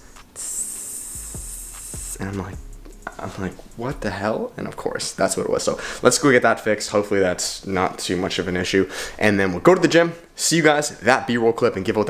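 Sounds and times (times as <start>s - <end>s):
man hissing with his mouth: 0.0s - 2.4s.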